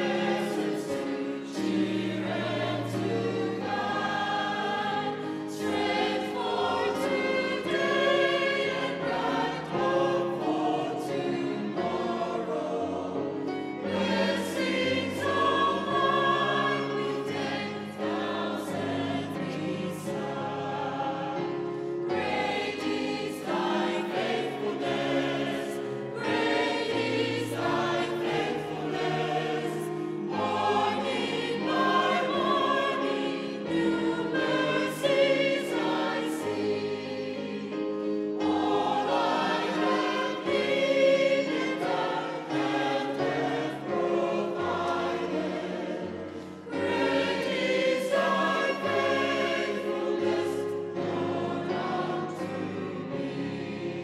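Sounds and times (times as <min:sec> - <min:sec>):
mixed choir singing: 0:00.0 - 0:54.0.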